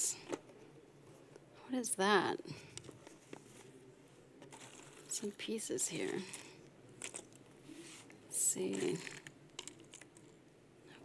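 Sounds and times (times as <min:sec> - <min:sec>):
jigsaw pieces rattling in box: 0:04.5 - 0:07.4, 0:08.7 - 0:10.3.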